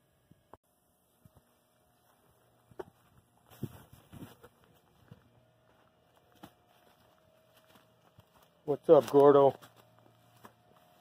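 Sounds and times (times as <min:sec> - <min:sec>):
footsteps on dry grass and dirt: 0:00.9 - 0:11.0.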